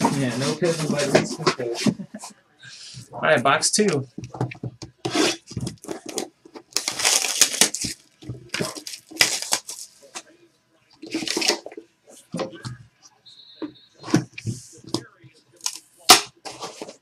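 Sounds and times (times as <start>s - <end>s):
cardboard scraping: 0.0s - 2.0s.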